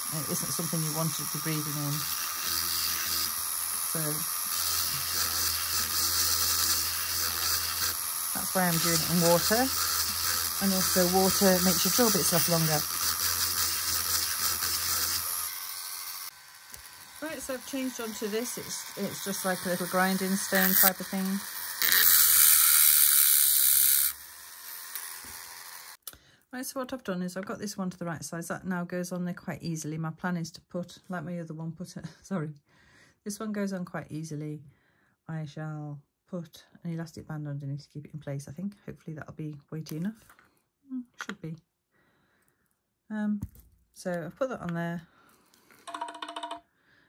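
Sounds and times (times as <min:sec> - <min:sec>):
rotary tool drilling shell: 0:00.0 - 0:26.0.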